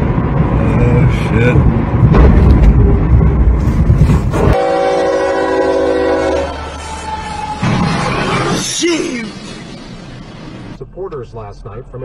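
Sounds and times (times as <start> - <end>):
locomotive air horn chord: 4.5 - 6.8.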